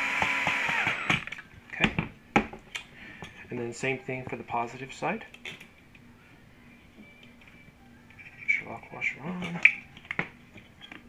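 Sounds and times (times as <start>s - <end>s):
cordless drill whirring: 0.0s - 1.3s.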